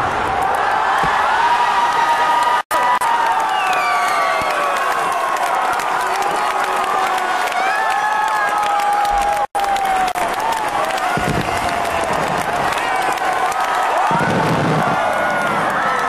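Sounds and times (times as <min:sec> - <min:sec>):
crowd cheering and shouting: 0:00.0 - 0:16.0.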